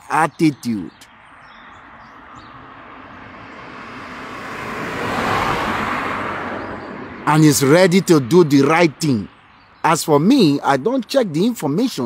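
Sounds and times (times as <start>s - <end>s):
car passing on road: 1.1s - 9.8s.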